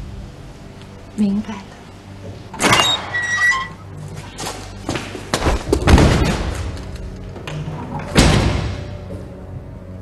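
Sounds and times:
door hinge squeal: 2.6s - 3.9s
heavy door thud: 8.0s - 9.1s.

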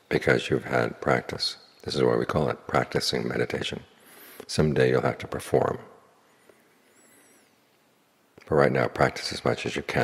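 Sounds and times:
faint high-pitched chirp: 6.8s - 7.6s.

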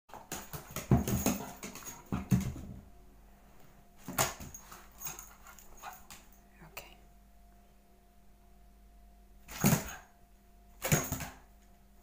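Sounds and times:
ball knocking on wooden floor: 0.1s - 2.9s.

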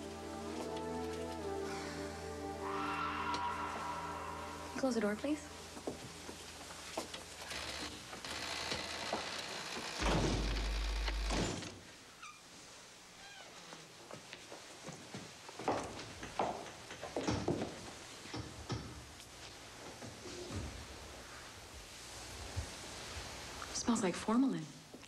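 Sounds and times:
door closing with a thunk: 10.0s - 11.8s.

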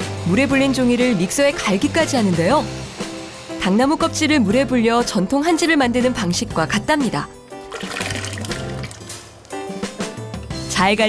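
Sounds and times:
background music: 0.0s - 11.0s
pulp pouring into water: 7.6s - 9.2s.

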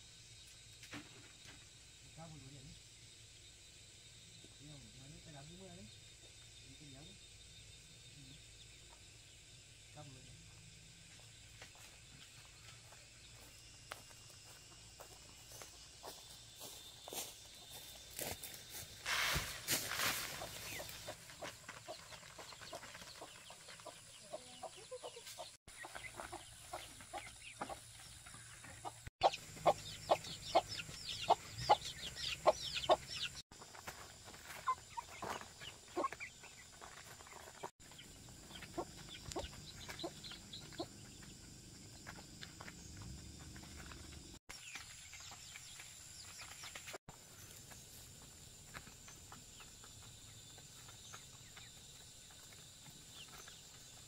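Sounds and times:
chickens clucking: 20.3s - 33.4s, 34.5s - 41.3s.

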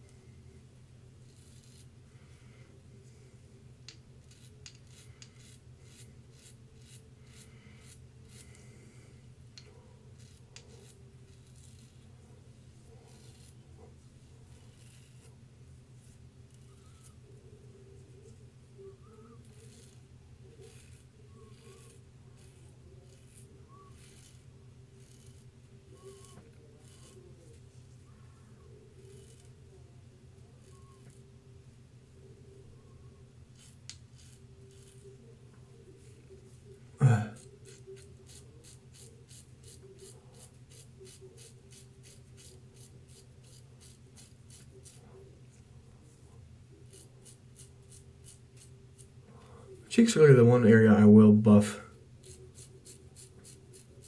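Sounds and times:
low steady hum: 0.0s - 54.0s
razor scraping stubble: 1.2s - 2.0s, 3.9s - 9.0s, 9.6s - 17.4s, 19.0s - 29.8s, 30.4s - 31.3s, 33.4s - 50.4s, 52.2s - 54.0s.

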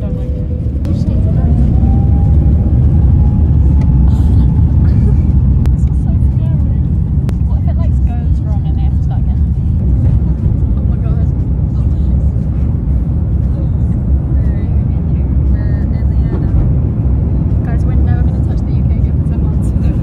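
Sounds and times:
engine whine rising in pitch: 0.0s - 7.4s
jet engines rumbling: 0.0s - 20.0s.

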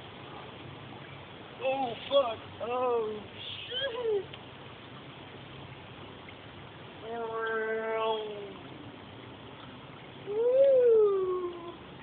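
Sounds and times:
person whooping: 10.3s - 11.8s.

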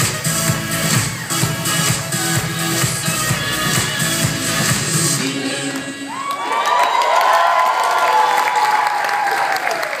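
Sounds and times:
group cheering and clapping: 5.2s - 10.0s.

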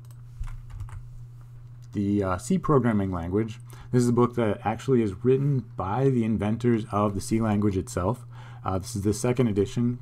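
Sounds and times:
keyboard keys clicking: 0.0s - 1.0s
steady low hum: 0.0s - 10.0s.

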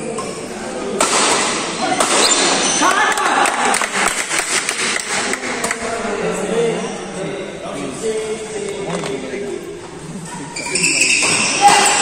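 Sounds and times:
players' voices: 0.0s - 12.0s
racket hitting shuttlecock: 1.0s - 2.6s.

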